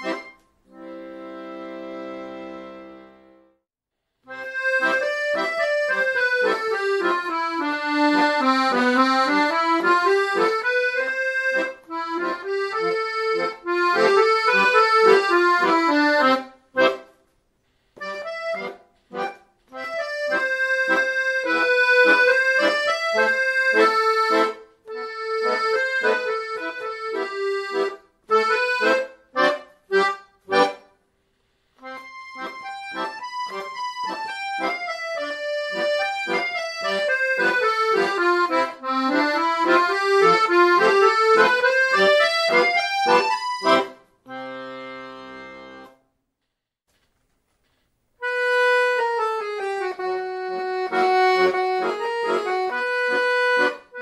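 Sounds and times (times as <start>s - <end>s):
piano accordion melody: 0.0s - 17.3s, 18.0s - 31.1s, 31.7s - 46.2s, 48.2s - 54.0s.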